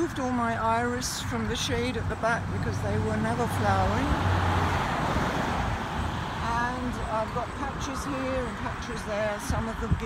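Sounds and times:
car driving past: 2.4 - 7.2.

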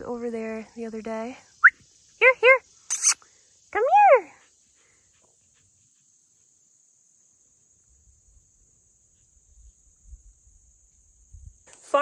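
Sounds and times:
crickets and insects chirping: 0.0 - 12.0.

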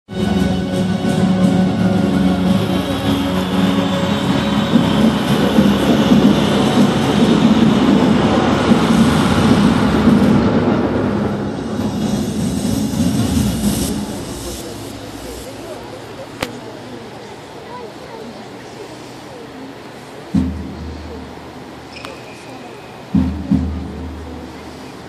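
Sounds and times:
loud dense rushing swell: 0.1 - 17.7.

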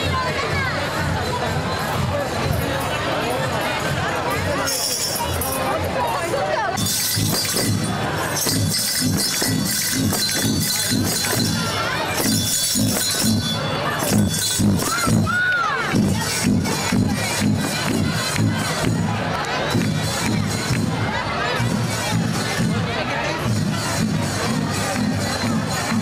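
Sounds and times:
voices: 0.0 - 26.0
metallic jingling and rattling: 4.6 - 15.2
low drum beats: 6.8 - 26.0
children shouting: 13.8 - 22.2
crowd cheering: 13.8 - 26.0.

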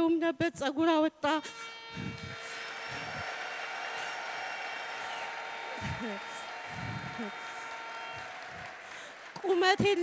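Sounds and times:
crowd clapping: 2.2 - 10.0.

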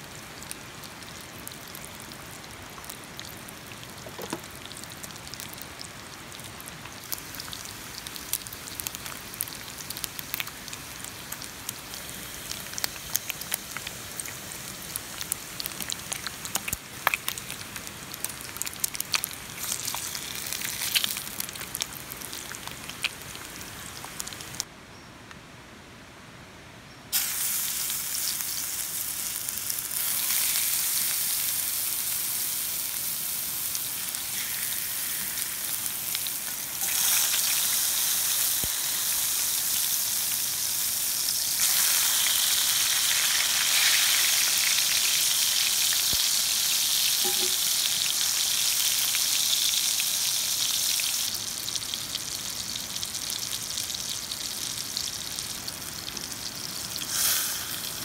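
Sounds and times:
tomatoes sizzling in fat: 0.0 - 24.7, 27.1 - 58.0
bacon frying with sharp pops: 0.4 - 24.7, 27.1 - 58.0.

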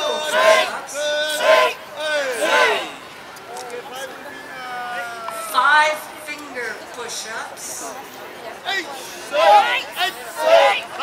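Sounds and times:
group shouting together: 0.0 - 3.0, 9.3 - 11.0.

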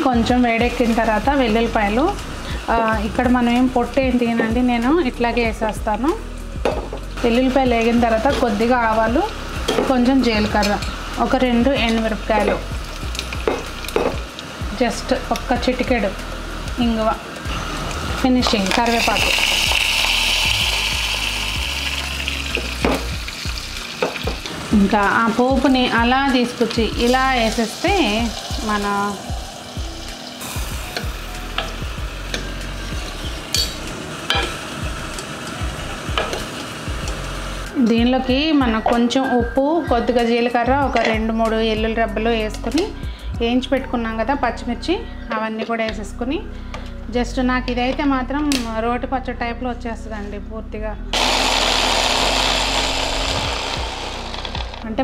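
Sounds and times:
hot oil sizzling: 7.1 - 37.8, 51.2 - 54.8
electric hand blender chopping: 18.9 - 23.2, 51.2 - 54.9.

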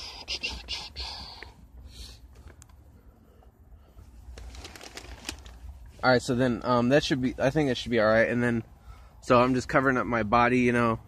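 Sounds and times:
fabric rustling: 4.1 - 6.0.

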